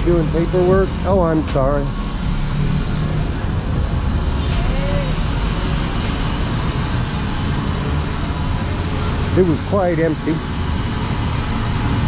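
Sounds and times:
low engine rumble: 0:00.0 - 0:12.0
road traffic: 0:00.0 - 0:12.0.

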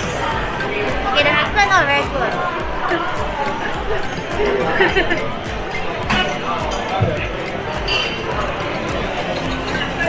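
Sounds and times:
faint background music: 0:00.0 - 0:10.0
voices chattering: 0:00.0 - 0:10.0.

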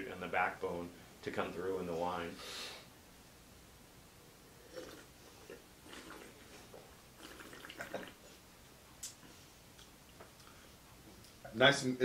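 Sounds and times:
sips and slurps of wine: 0:04.6 - 0:08.3.

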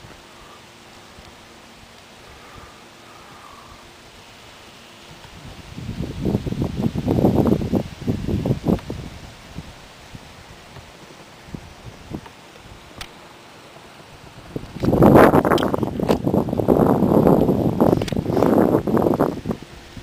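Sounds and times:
rustling buffeting on microphone: 0:00.0 - 0:20.0.

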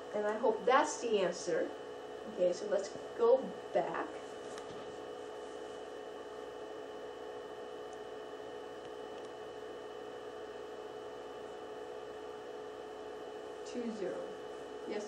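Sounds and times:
room hum with hiss: 0:00.0 - 0:15.0.

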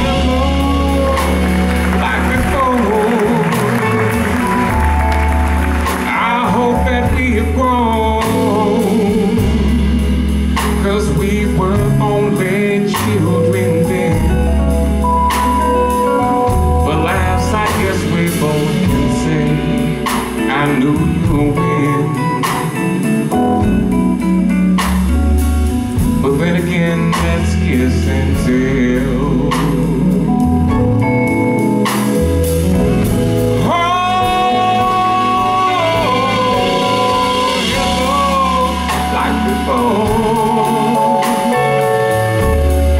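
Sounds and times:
man singing into microphone: 0:00.0 - 0:05.0, 0:05.8 - 0:14.7, 0:16.8 - 0:23.4, 0:26.2 - 0:30.8, 0:33.5 - 0:42.8
electric bass notes: 0:00.0 - 0:42.9
live band soul ballad: 0:00.0 - 0:42.9.

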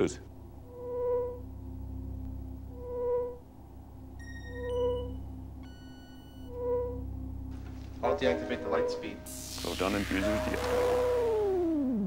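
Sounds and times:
steady low hum: 0:00.0 - 0:12.0
soft sonar-like tone: 0:00.6 - 0:07.5, 0:08.1 - 0:12.0
electronic computer bleeps: 0:04.2 - 0:07.0, 0:08.4 - 0:12.0.

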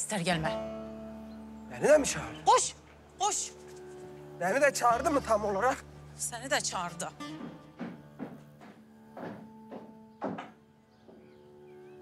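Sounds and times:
sustained score music: 0:00.1 - 0:12.0
soft thumps: 0:07.3 - 0:11.3.

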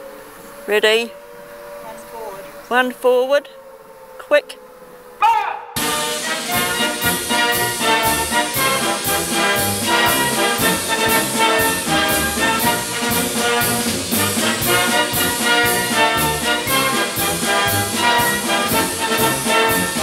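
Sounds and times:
called word of command: 0:05.2 - 0:06.6
brass band march music: 0:05.2 - 0:20.0.

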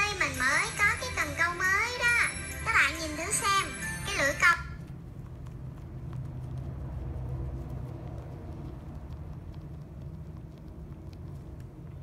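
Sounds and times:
steady low hum: 0:00.0 - 0:12.0
soapy fingers scrubbing wet ear: 0:04.8 - 0:12.0.

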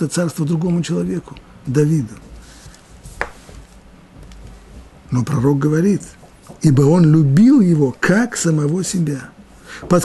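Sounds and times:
low room hum: 0:00.0 - 0:10.0
papers handled on a desk: 0:02.4 - 0:04.9.

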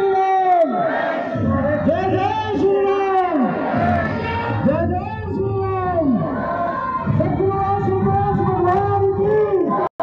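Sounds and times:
low pulsing beat: 0:01.3 - 0:09.7.

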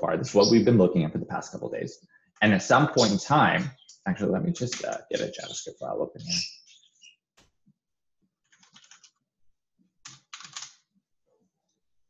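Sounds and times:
computer keyboard typing: 0:08.5 - 0:09.1, 0:10.0 - 0:10.8.

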